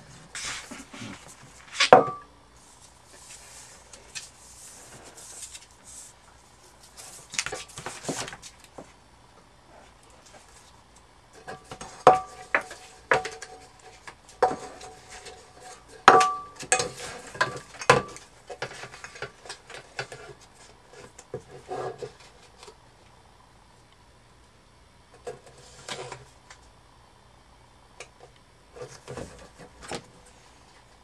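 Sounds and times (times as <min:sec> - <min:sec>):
tape and paper rustling: 0:02.7 - 0:06.2, 0:06.8 - 0:08.9.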